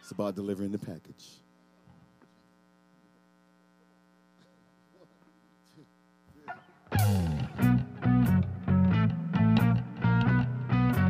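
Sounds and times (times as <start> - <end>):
electrical mains hum: 0.0 - 7.0
loud electric guitar: 6.3 - 11.0.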